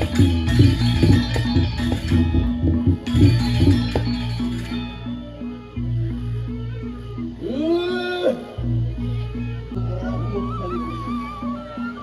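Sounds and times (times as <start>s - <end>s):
gamelan metallophone figure: 0.0s - 6.3s
long wailing cry: 7.4s - 8.6s.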